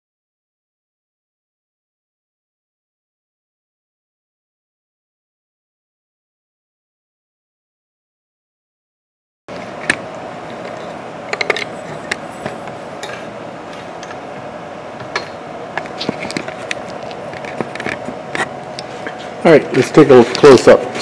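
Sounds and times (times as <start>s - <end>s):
router humming: 9.5s - 21.0s
sharp clicks and knocks: 9.8s - 14.2s, 15.0s - 19.3s.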